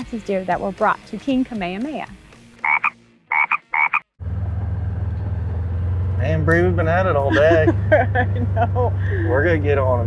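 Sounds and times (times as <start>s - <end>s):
vehicle engine running: 4.2s - 10.0s.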